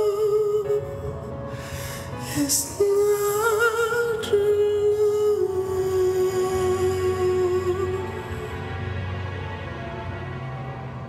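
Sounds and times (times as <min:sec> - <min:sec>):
ballad backing music: 0:00.0 - 0:11.0.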